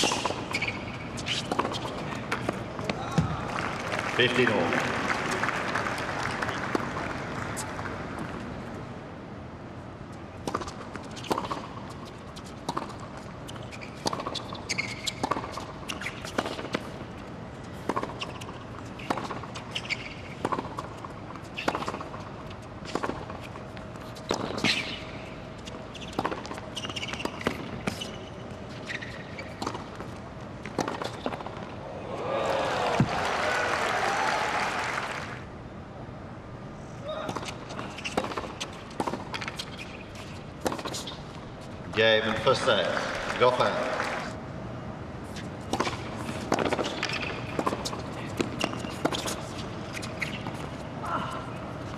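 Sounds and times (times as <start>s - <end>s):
tennis ball bouncing on hard court: 0.0s - 3.4s, 10.4s - 17.0s, 17.8s - 25.1s, 26.0s - 28.2s, 28.9s - 31.7s, 37.2s - 41.4s, 45.6s - 50.8s
tennis ball struck by rackets: 14.0s - 16.9s, 17.8s - 20.9s, 30.6s - 31.6s, 40.6s - 41.1s, 45.7s - 49.4s.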